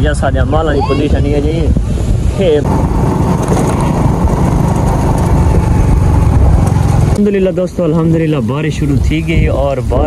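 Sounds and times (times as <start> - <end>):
motorcycle engine running: 2.7 - 8.8.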